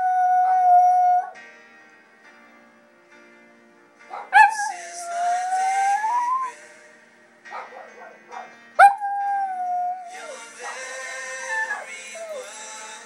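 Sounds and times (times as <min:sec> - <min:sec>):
dog howling: 0:00.0 - 0:01.4, 0:04.2 - 0:06.6, 0:08.8 - 0:10.8, 0:11.4 - 0:12.5
song playing in room: 0:00.0 - 0:13.0.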